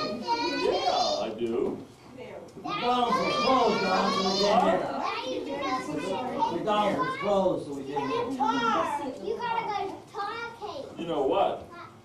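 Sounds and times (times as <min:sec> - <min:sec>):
children chattering and calling out: 0:00.0 - 0:01.5, 0:02.5 - 0:11.0, 0:11.6 - 0:12.0.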